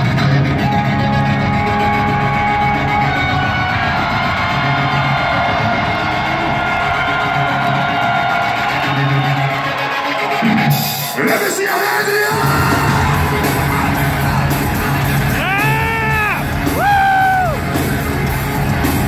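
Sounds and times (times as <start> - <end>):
heavy rock music: 0.0 - 19.0.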